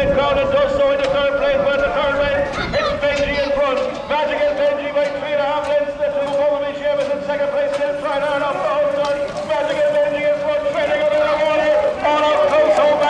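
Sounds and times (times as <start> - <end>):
man commentating over loudspeakers: 0.0 - 13.0.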